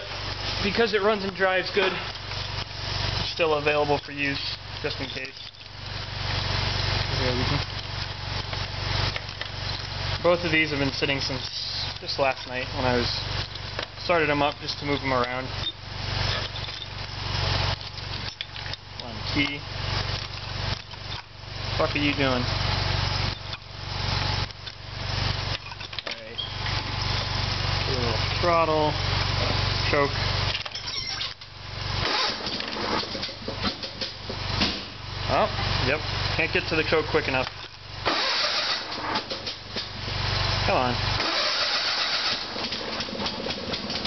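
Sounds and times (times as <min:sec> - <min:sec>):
garden tractor engine idling: 0:00.0 - 0:44.0
engine firing up: 0:31.9 - 0:33.3, 0:34.6 - 0:44.0
engine cranking with starter: 0:32.0 - 0:33.3, 0:38.0 - 0:39.8, 0:41.2 - 0:44.0.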